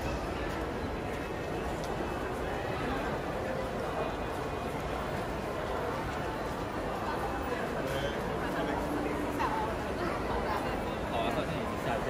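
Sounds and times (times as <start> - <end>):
indistinct chatter: 0.0 - 12.0.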